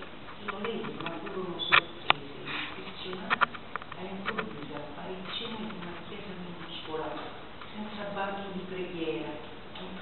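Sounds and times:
woman reading aloud: 0.4 - 10.0.

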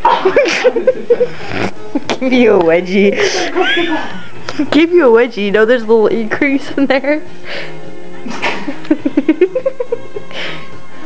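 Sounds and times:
person giggling: 0.0 - 1.4, 8.3 - 10.3
background music: 0.0 - 11.0
breathy exhale: 7.4 - 7.8.

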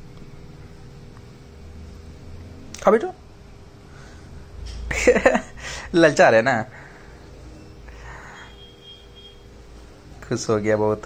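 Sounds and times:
room hum: 0.0 - 11.0
faint high tone: 7.4 - 9.5.

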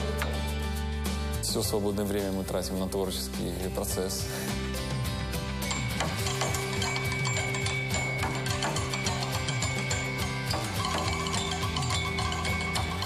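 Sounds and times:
drumsticks striking metal shelter: 5.8 - 13.0.

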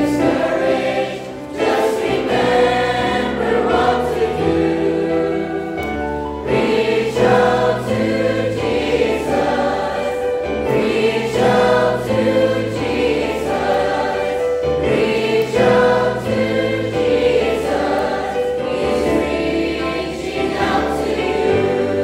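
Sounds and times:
mixed choir singing a hymn: 0.0 - 22.0.

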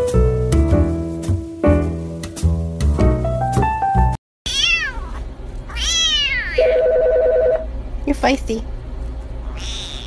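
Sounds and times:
kitten meowing: 4.5 - 6.7, 9.4 - 10.0
telephone ringing: 6.6 - 7.7.

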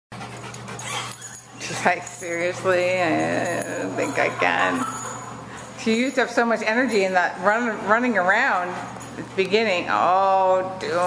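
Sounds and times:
dog panting: 0.1 - 4.9.

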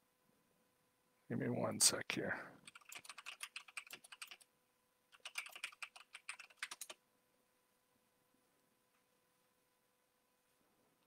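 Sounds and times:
keyboard typing: 2.6 - 4.4, 5.1 - 7.0.

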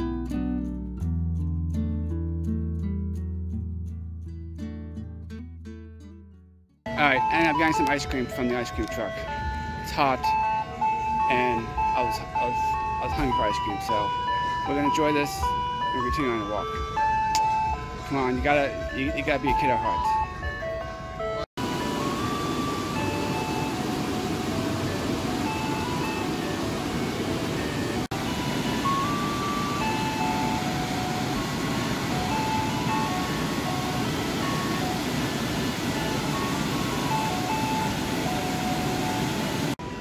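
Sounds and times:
ice cream truck jingle: 6.9 - 40.0.

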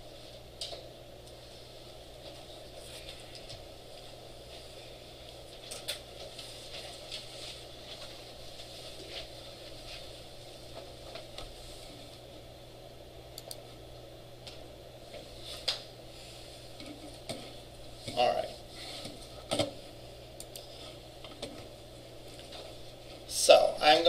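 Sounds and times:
room hum: 0.0 - 24.0.

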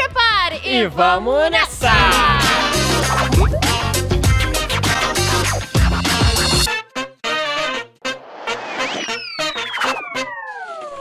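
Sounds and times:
upbeat music with brass hits: 1.7 - 10.3
falling whistle-like sound effect: 8.4 - 11.0.

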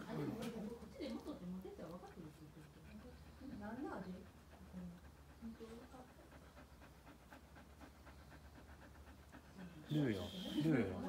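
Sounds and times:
dog panting softly: 0.0 - 11.0.

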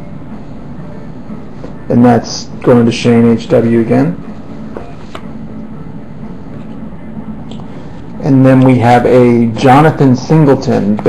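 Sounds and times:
low rumble and hum: 0.0 - 11.0.

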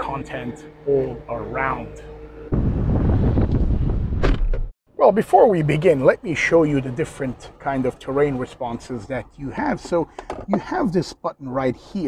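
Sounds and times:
wind buffeting a microphone: 2.5 - 4.4.

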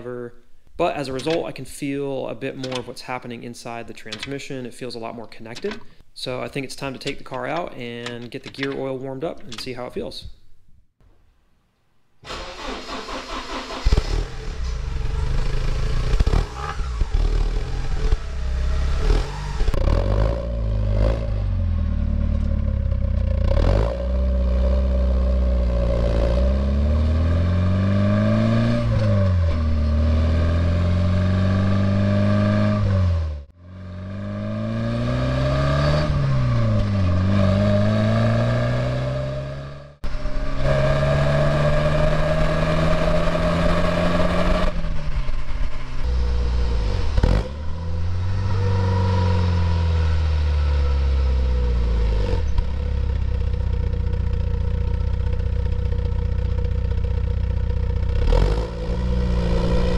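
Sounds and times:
car engine accelerating: 12.3 - 59.9
tyre and road noise: 13.9 - 59.9.

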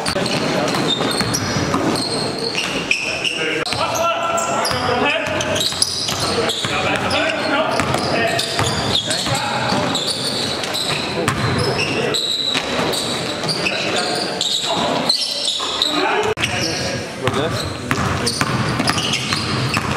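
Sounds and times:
basketball bouncing on gym floor: 0.0 - 2.8, 4.7 - 11.8, 17.2 - 19.9
players' voices: 0.0 - 19.7
shoe squeaks: 0.0 - 19.9.

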